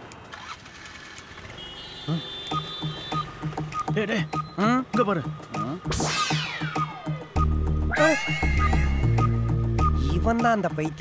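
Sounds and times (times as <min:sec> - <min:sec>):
comic background music: 0:03.1 - 0:11.0
high rising cry: 0:06.0 - 0:09.4.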